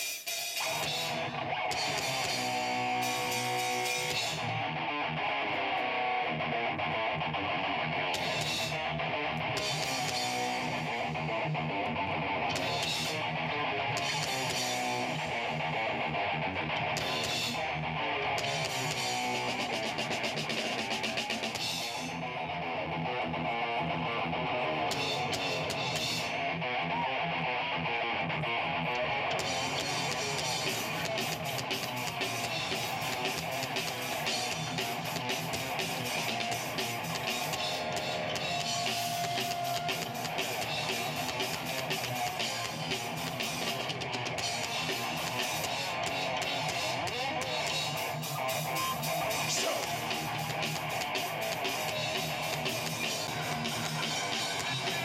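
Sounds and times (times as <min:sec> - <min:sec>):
rock band playing live: 0:00.0 - 0:55.0.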